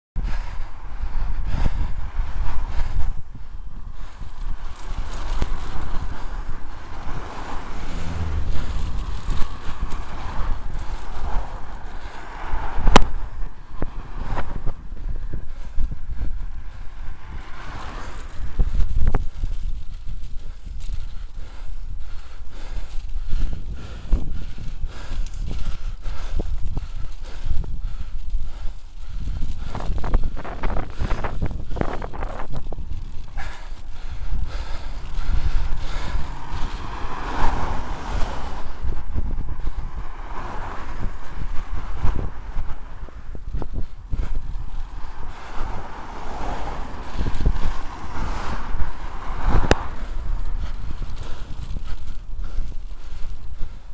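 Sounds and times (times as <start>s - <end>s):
road rumble: 0.2s - 53.9s
vehicles passing close by: 0.2s - 53.9s
wind buffeting microphone: 0.2s - 53.9s.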